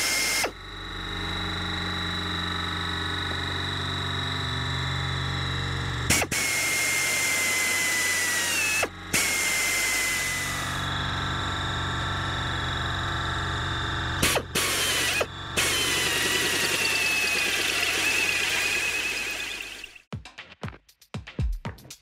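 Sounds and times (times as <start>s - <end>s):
pneumatic air drill whining: 0.0s - 4.5s, 5.5s - 12.6s, 13.4s - 20.0s.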